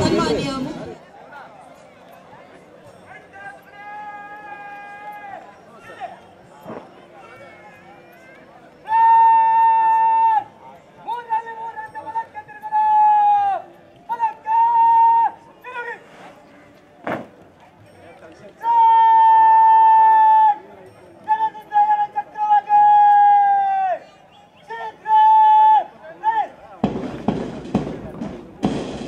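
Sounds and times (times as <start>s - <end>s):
sharp knock: 26.8s - 29.0s.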